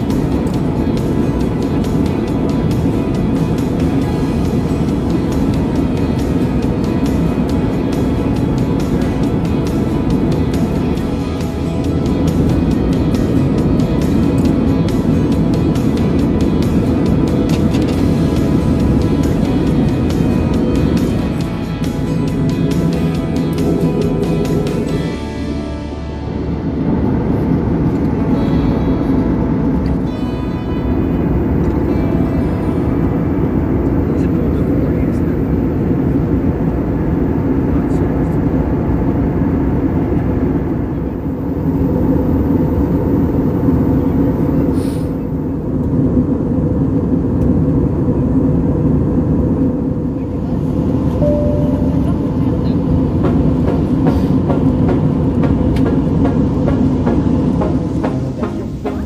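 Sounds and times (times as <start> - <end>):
airliner cabin engine rush: 0.0 - 30.2, 30.8 - 59.0.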